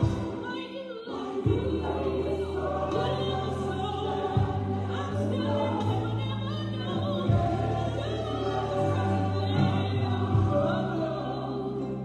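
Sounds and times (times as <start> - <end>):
gospel choir singing: 0.0 - 12.0.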